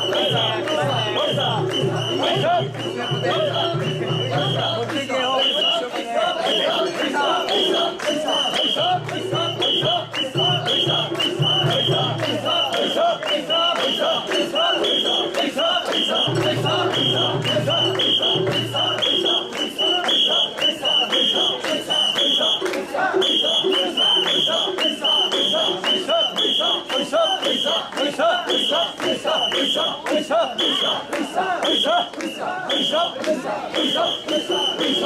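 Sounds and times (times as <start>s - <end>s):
shrill whistle blasts: 0.0s - 27.8s, 28.5s - 33.2s, 33.8s - 35.0s
crowd chanting together: 0.0s - 35.0s.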